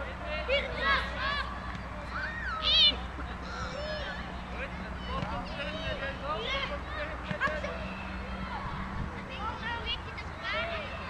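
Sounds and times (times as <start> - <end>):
children calling and shouting: 0.0 - 11.0.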